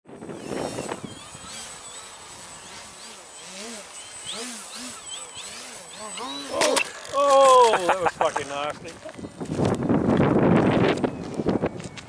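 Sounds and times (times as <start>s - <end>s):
thin high whine: 0.1s - 8.5s
model plane motor whine: 0.1s - 12.0s.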